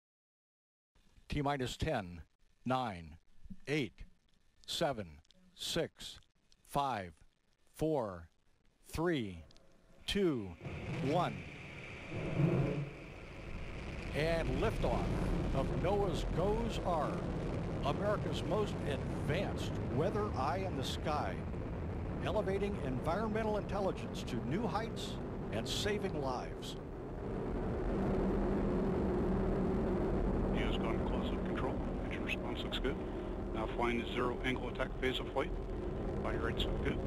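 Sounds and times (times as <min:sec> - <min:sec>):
rocket engine rumble: 0:10.5 - 0:37.0.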